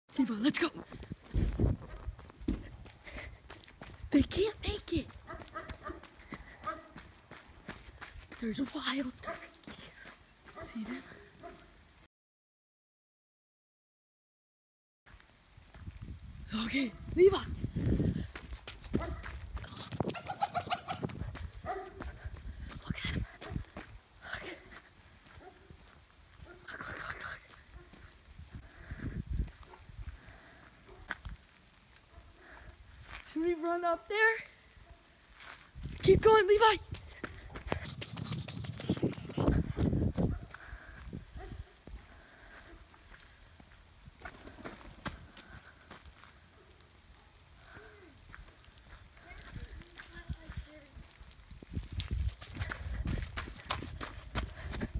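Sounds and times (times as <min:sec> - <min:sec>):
running footsteps on pavement: 0:00.5 - 0:11.7, 0:15.1 - 0:16.1, 0:16.9 - 0:33.4, 0:35.3 - 0:46.5, 0:47.6 - 0:54.9
running footsteps thuds and rustling: 0:00.8 - 0:04.1, 0:17.7 - 0:24.0, 0:36.8 - 0:41.0, 0:51.6 - 0:54.9.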